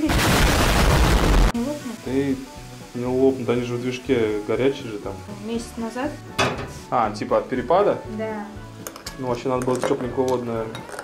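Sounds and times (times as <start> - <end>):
fizzing hiss: 0.0 - 11.0.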